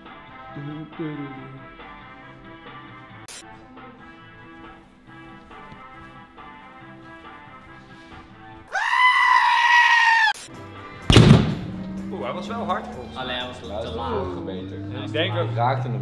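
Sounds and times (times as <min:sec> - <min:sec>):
background music: 0:00.0 - 0:16.0
sheep screaming bleat: 0:08.7 - 0:10.4
punch thump on boxing bag: 0:11.1 - 0:11.8.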